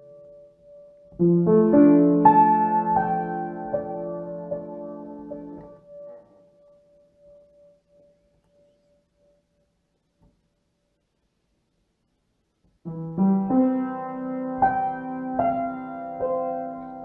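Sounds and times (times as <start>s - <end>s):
piano chords: 0.0s - 8.3s, 12.8s - 17.0s.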